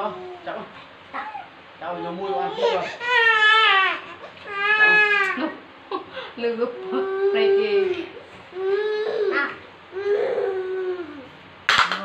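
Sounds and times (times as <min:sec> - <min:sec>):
baby monkey crying: 0:01.1 - 0:05.4.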